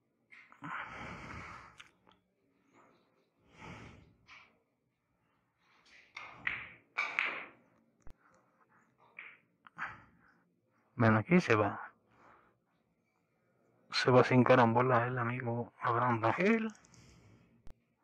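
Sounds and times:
soft breathing: 0.6 - 1.9, 2.6 - 4.6, 9.7 - 11.0, 12.0 - 13.8, 16.8 - 17.8.

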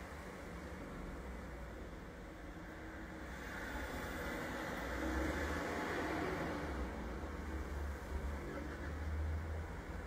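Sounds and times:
low hum with hiss: 0.0 - 10.0.

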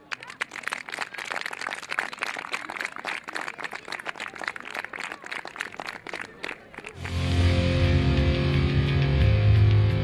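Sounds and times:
audience applauding: 0.0 - 7.2.

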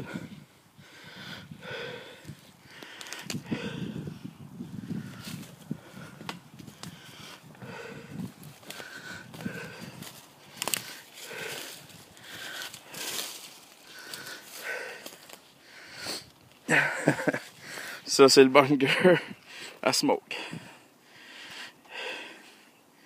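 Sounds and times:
person breathing heavily: 0.0 - 18.2, 19.0 - 23.0
twigs clicking underfoot: 2.7 - 3.5, 6.2 - 7.4, 8.3 - 15.6
footsteps on forest floor: 8.2 - 15.6.

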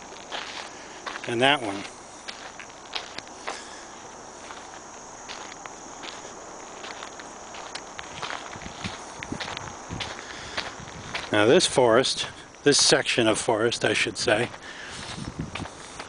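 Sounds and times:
faint outdoor hiss: 0.0 - 16.0
footsteps on sandy dirt road: 0.0 - 16.0.

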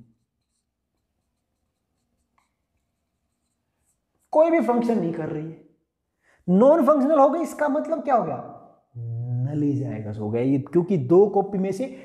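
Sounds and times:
marker pen writing on whiteboard: 0.0 - 5.0.

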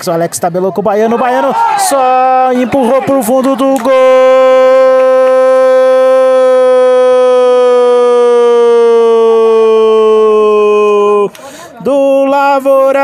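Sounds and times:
commentator's long goal call: 1.3 - 12.8.

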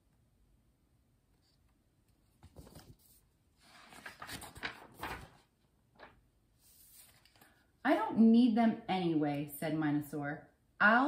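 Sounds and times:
book pages rustling: 1.4 - 7.7.

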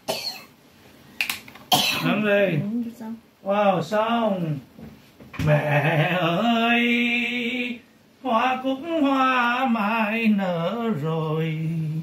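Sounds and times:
person coughing: 0.0 - 0.6, 1.7 - 2.2.

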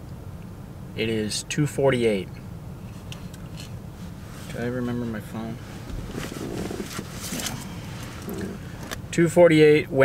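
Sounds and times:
truck cab rumble: 0.0 - 10.0
light rustling: 2.8 - 9.0.

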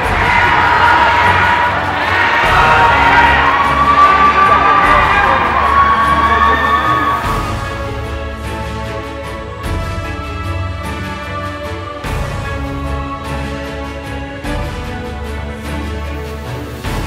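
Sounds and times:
shrill drawn-out screams: 0.0 - 7.7
crowd cheering: 0.0 - 8.7.

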